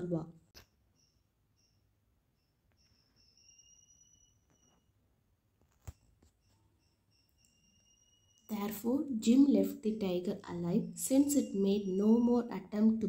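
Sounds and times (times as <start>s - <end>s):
soft high chirps: 0.6s - 5.1s, 6.4s - 9.2s, 10.0s - 13.0s.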